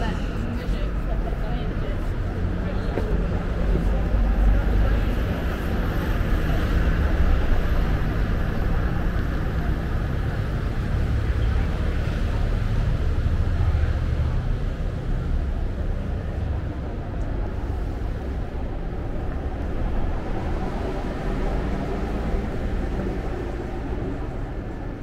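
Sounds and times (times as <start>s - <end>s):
indistinct voices: 0.0s - 25.0s
traffic rumble: 0.0s - 25.0s.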